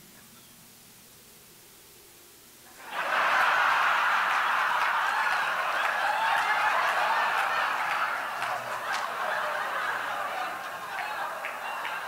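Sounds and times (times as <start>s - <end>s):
audience laughing: 2.7s - 12.0s
scattered claps: 2.8s - 12.0s.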